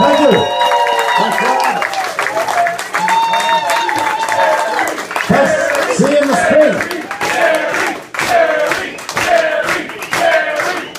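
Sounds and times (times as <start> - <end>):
scattered clapping: 0.2 - 10.9.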